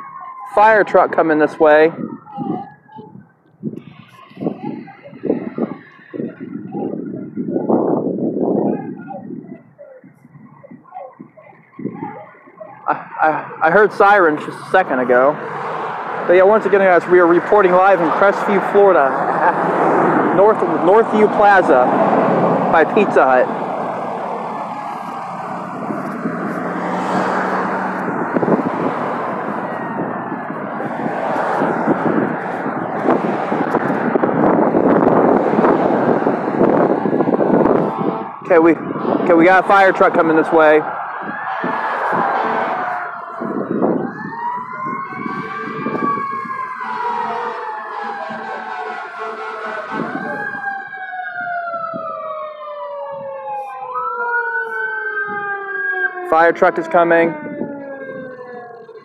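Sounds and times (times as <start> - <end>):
cars passing on busy road: 0.0 - 59.0
fire truck siren wailing: 0.0 - 59.0
traffic rumble: 0.0 - 59.0.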